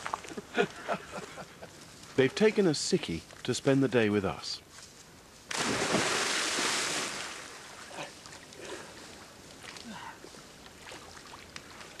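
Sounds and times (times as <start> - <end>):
person splashing into water: 5.5 - 7.6
water splashing and lapping: 5.5 - 10.0, 10.6 - 12.0.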